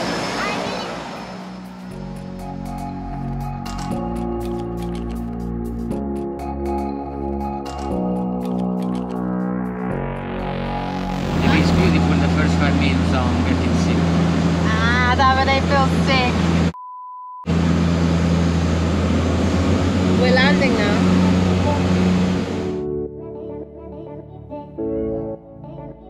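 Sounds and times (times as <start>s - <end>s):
plane engine drone in cabin: 0.0s - 3.3s, 8.6s - 16.8s, 17.5s - 22.8s
short beep: 16.8s - 17.5s.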